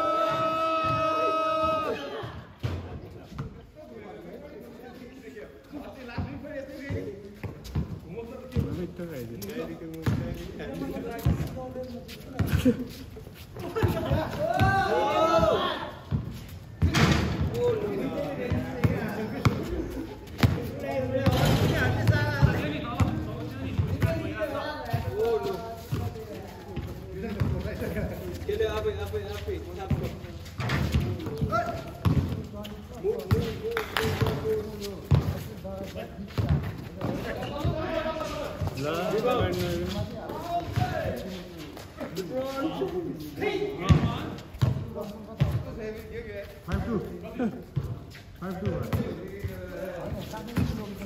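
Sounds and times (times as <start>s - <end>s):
players calling out: 0.0s - 2.5s
basketball bouncing on concrete: 6.1s - 8.8s, 9.9s - 10.4s, 13.9s - 17.8s, 18.4s - 21.4s, 22.0s - 27.9s, 29.8s - 35.6s, 36.3s - 37.9s, 38.6s - 41.2s, 43.8s - 46.0s, 48.6s - 51.0s.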